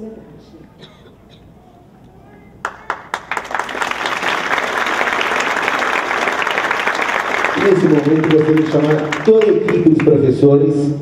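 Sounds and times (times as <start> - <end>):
audience applauding: 2.6 - 10.5.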